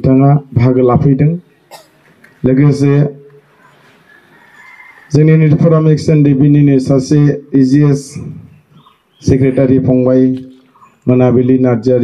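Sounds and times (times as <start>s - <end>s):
man speaking into a microphone: 0.0s - 1.5s, 2.4s - 3.5s, 5.1s - 8.6s, 9.2s - 12.0s.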